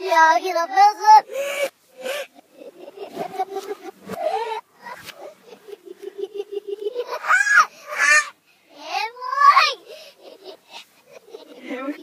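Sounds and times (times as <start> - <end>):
girls' laughter played backwards: 1.4 - 8.3.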